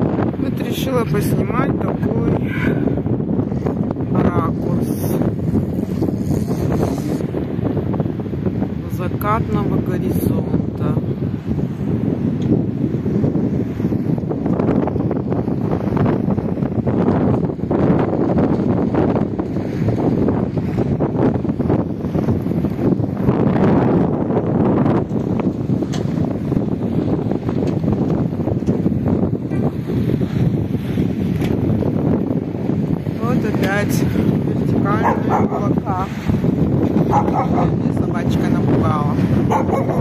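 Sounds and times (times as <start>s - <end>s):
wind buffeting microphone: 0.0s - 40.0s.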